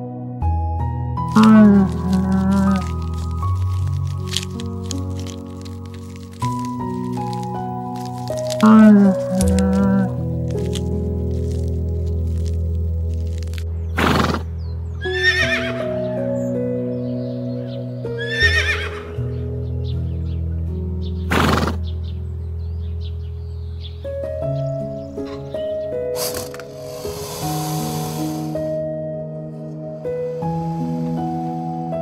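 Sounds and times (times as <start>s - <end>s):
soft background music: 0.0s - 32.0s
horse whinnying: 15.0s - 15.9s, 18.2s - 19.2s
hiss: 26.2s - 28.7s
horse breathy blasts: 26.2s - 28.7s.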